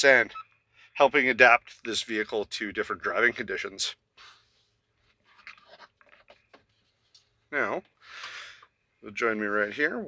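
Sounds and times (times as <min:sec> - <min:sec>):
faint rustling scratches: 0:04.2 - 0:07.4.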